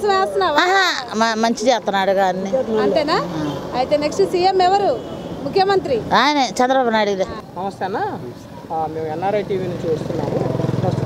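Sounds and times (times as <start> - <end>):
man speaking: 6.1 - 11.0
motorcycle engine running: 8.8 - 11.0.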